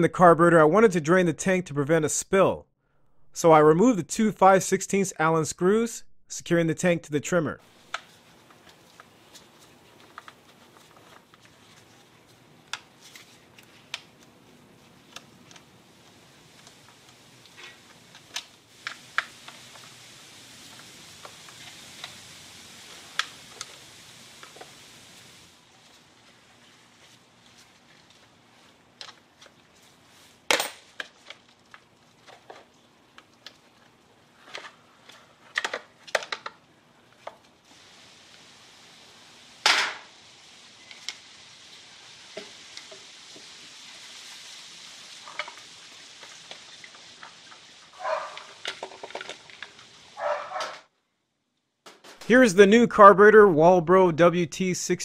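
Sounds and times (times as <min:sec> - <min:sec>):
faint steady hiss: 0:03.4 - 0:50.2, 0:51.1 - 0:55.0
plastic parts clicking and knocking: 0:35.5 - 0:36.6, 0:48.6 - 0:49.8.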